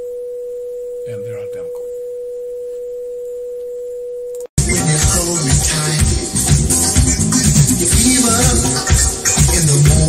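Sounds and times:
music with a beat: 4.6s - 10.0s.

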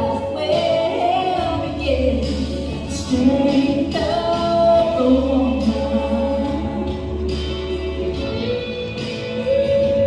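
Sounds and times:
instrumental accompaniment: 0.0s - 10.0s
woman singing into microphone: 0.0s - 10.0s.

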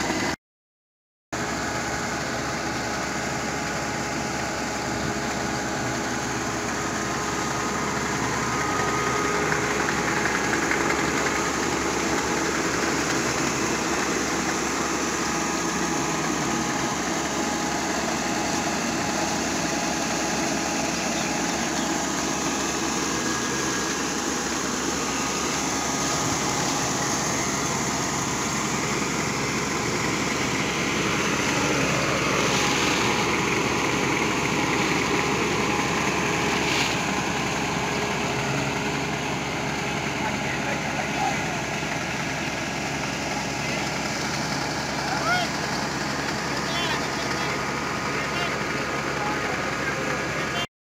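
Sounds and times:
combine harvester humming: 0.0s - 0.4s, 1.4s - 50.7s
grain pouring from auger: 1.4s - 50.6s.

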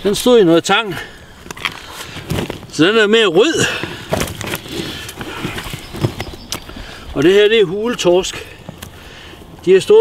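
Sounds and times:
rustling: 1.4s - 9.4s.

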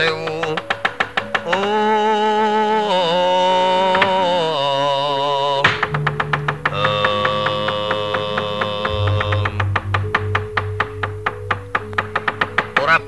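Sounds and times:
sharp wooden and metal knocks: 0.0s - 1.9s, 3.8s - 4.3s, 5.6s - 13.0s
gamelan playing: 5.9s - 13.0s
low pulsing beat: 6.0s - 13.0s
held metallic tones ringing: 8.9s - 13.0s.

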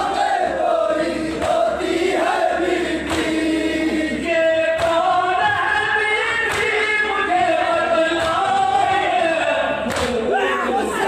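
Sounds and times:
sharp rhythmic beat: 0.0s - 8.9s
men chanting over loudspeakers: 0.0s - 11.0s.

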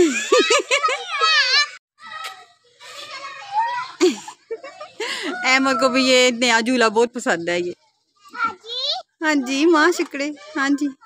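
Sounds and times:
children playing: 0.0s - 6.4s, 7.6s - 11.0s.

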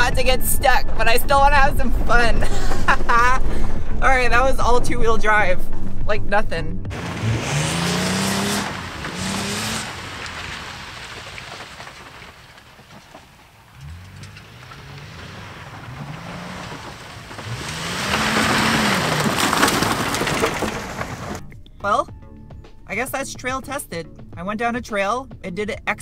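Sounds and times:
truck engine revving: 0.0s - 21.6s.

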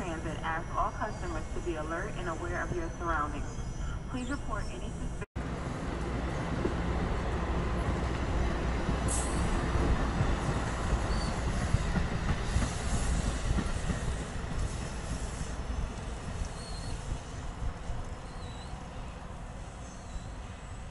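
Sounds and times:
train wheels rumbling on rails: 5.4s - 20.2s.

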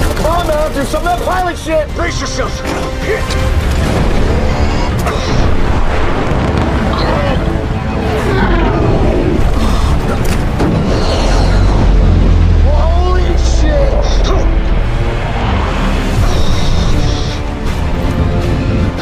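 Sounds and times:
film music score: 0.0s - 19.0s
deep rumble: 3.2s - 19.0s
jet engine roar: 3.8s - 17.6s.

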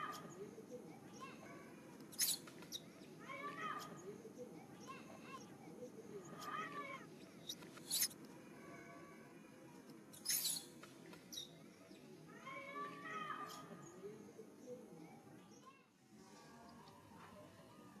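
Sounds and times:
baby monkey squealing: 2.2s - 2.5s, 7.5s - 8.1s, 10.2s - 10.7s.

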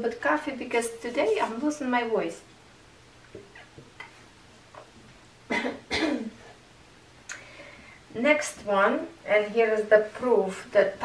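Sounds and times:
woman coughing: 5.5s - 6.4s.

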